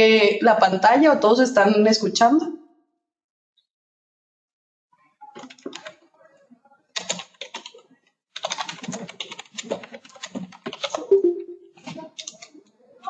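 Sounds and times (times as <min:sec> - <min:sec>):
typing on computer keyboard: 0:05.4 - 0:06.0, 0:07.0 - 0:07.8, 0:08.4 - 0:11.2, 0:11.8 - 0:12.5.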